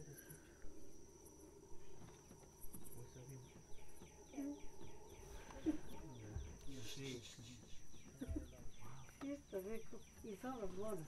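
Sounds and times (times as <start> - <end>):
high insect trill: 0.0 - 11.0.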